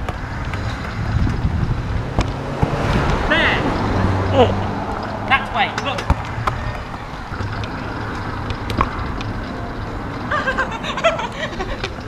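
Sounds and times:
powerchair motor hum and tyre rumble: 0.0s - 12.0s.

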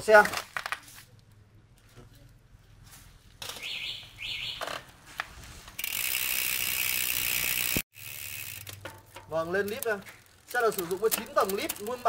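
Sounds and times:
bicycle chain running: 5.4s - 12.0s
freehub ratcheting: 5.7s - 12.0s.

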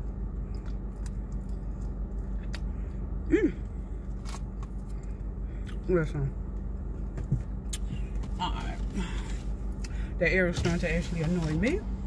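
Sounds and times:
car air conditioning blower humming: 0.0s - 12.0s.

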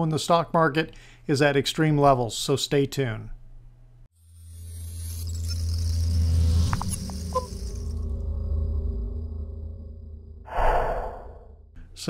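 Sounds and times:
low drone: 5.3s - 11.7s
breathy whoosh: 10.5s - 11.7s.

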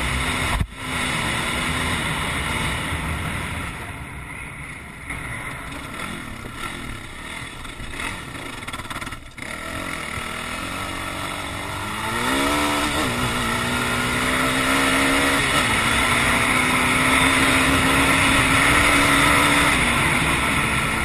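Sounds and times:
atv engine revving: 0.0s - 4.0s, 5.0s - 21.0s.

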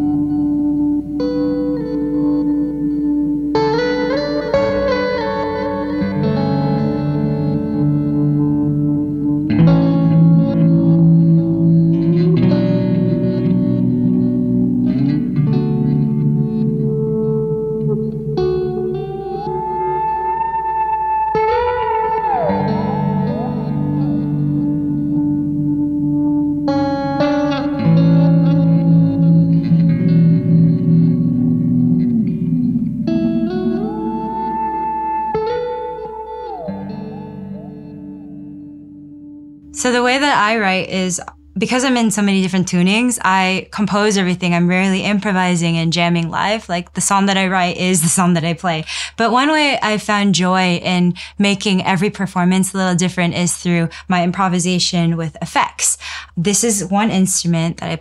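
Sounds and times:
ambient electric guitar chords: 0.0s - 43.0s
high feedback tone: 16.7s - 27.6s, 29.2s - 39.1s.

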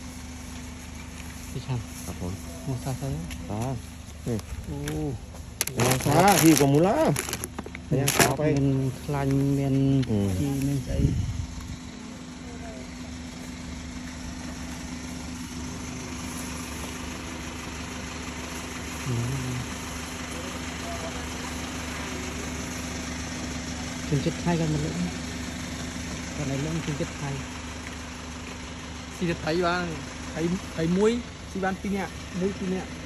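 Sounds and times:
steady mechanical hum: 0.0s - 33.0s
person speaking: 1.5s - 11.2s.

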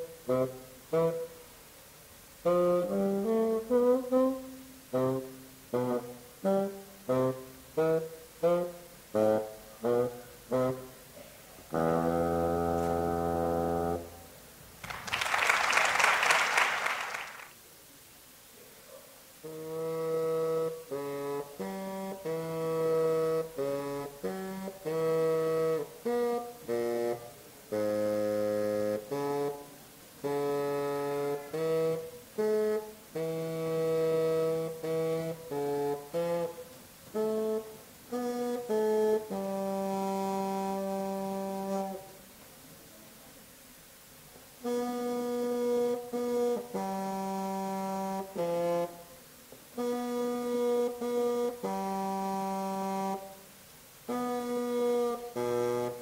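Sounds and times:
solo bassoon melody: 0.0s - 1.6s, 2.3s - 14.4s, 19.4s - 42.2s, 44.5s - 56.0s.

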